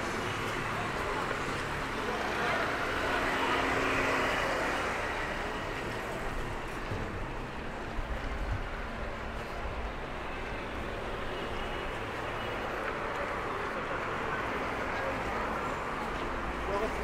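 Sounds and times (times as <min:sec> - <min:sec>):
road traffic going by: 0:00.0 - 0:17.0.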